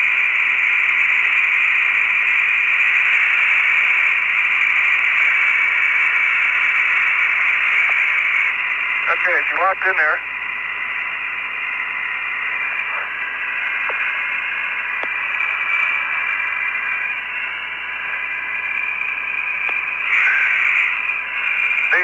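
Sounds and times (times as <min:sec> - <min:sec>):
radio static hiss: 0:00.0 - 0:22.0
faint radio clicks: 0:07.8 - 0:08.0, 0:13.8 - 0:14.1, 0:14.9 - 0:15.2, 0:19.6 - 0:20.4.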